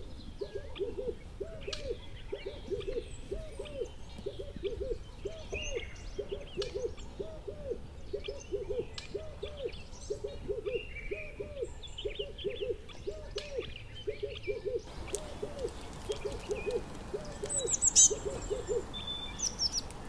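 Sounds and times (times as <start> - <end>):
small birds chirping: 0.0 - 20.0
owl hooting: 0.4 - 19.9.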